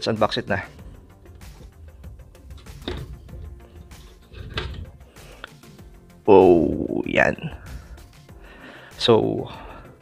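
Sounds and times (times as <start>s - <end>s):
quiet background music: 0.0s - 10.0s
scraping handling sounds: 0.5s - 5.8s.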